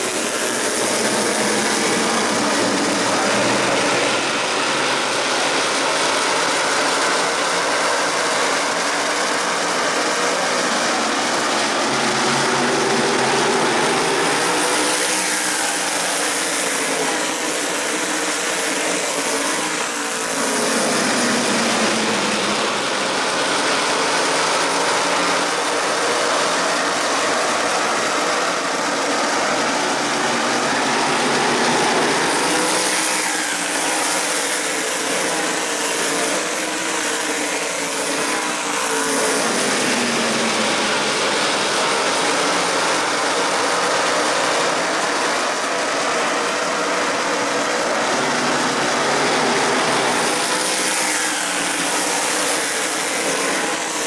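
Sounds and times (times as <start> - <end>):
race car engines: 0.0 - 54.0
race cars passing by: 0.0 - 54.0.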